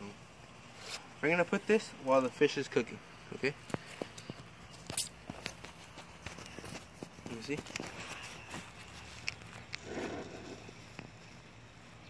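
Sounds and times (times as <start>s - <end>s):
footsteps on grass: 3.7s - 12.0s.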